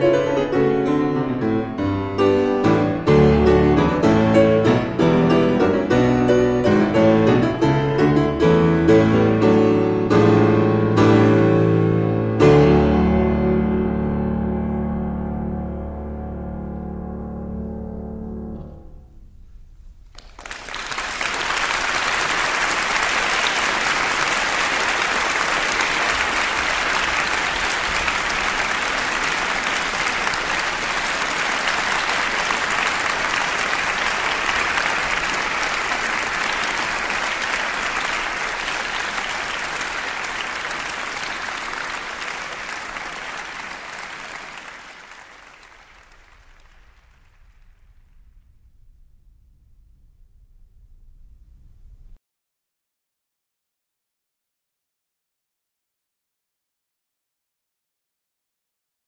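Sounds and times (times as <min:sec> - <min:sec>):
applause: 0:20.1 - 0:48.1.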